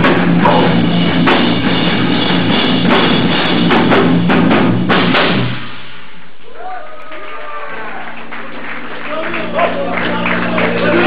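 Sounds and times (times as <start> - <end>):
rock band playing: 0.0 - 5.9, 8.3 - 11.0
crowd noise: 6.3 - 11.0.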